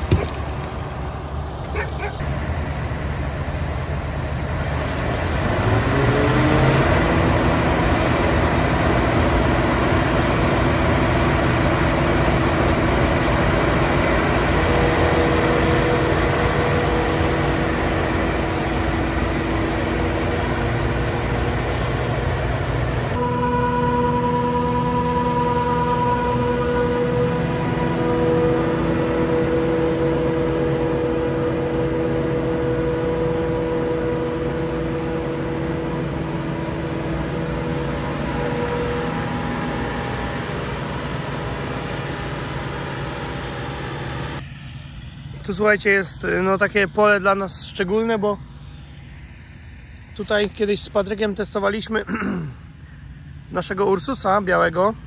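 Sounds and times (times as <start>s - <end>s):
harvester machine drone: 0.0s - 55.0s
chopper drum and blower whines: 2.2s - 55.0s.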